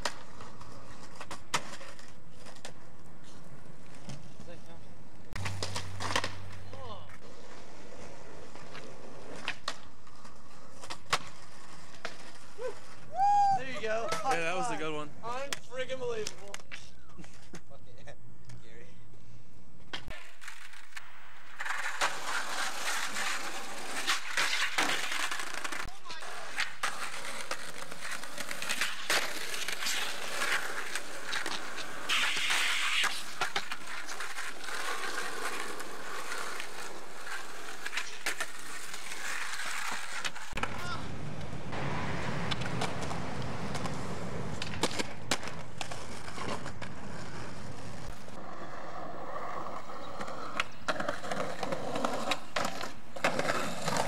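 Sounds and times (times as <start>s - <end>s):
skateboard clacks popping and landing: 0.0s - 2.9s, 5.3s - 7.4s, 8.0s - 12.5s, 19.8s - 48.2s, 50.1s - 54.0s
skateboard wheels rolling on concrete: 0.0s - 54.0s.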